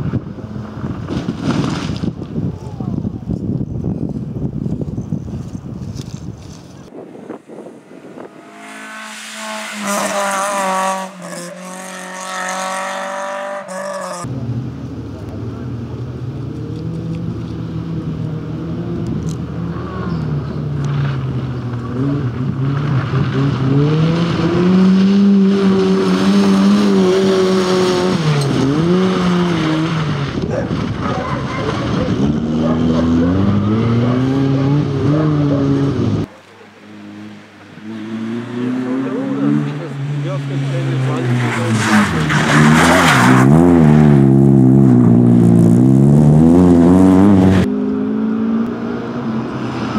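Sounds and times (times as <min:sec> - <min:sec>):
small car engine running hard: 0:06.9 - 0:49.9
high-revving rally car engine: 0:07.2 - 0:49.9.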